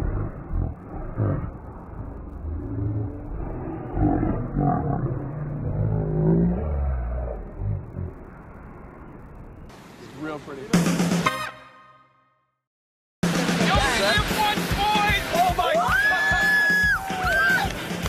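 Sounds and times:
low rumble: 0:00.0 - 0:10.0
men shouting and yelling: 0:13.6 - 0:17.8.

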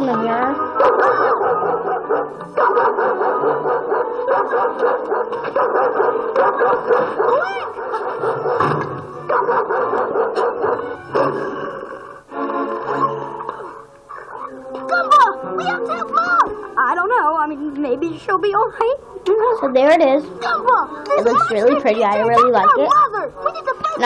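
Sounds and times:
muffled cartoon music and effects: 0:00.0 - 0:24.0.

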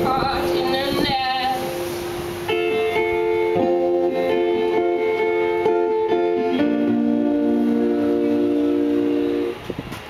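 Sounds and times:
acoustic guitar chord: 0:00.0 - 0:09.6.

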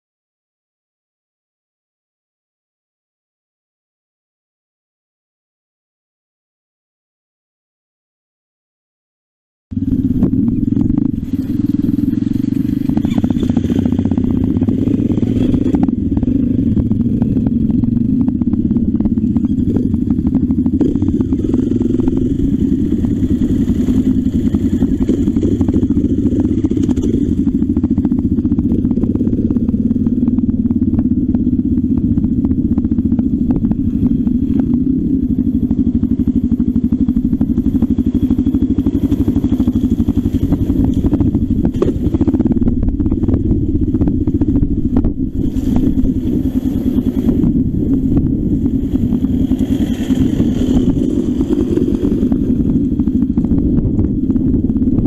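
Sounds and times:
motorcycle engine running: 0:09.7 - 0:55.0
motorcycle rattling over ruts: 0:09.8 - 0:55.0.

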